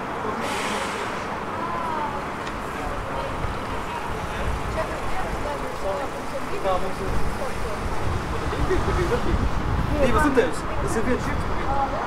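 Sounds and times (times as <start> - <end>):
indistinct voices of passers-by: 0.0 - 12.0
low street rumble: 0.0 - 12.0.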